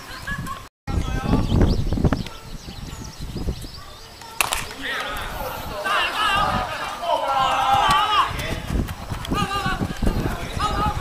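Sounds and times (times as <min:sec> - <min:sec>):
bat cracking ball: 0:04.4 - 0:05.2
people shouting: 0:04.4 - 0:11.0.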